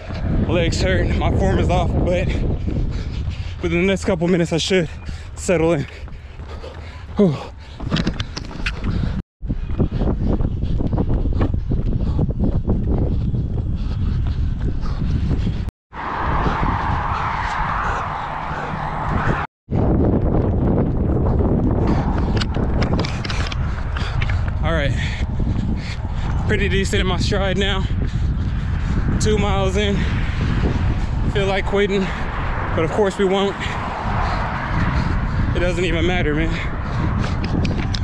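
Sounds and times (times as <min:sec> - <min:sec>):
wind rumbling on microphone: 0:00.0 - 0:38.0.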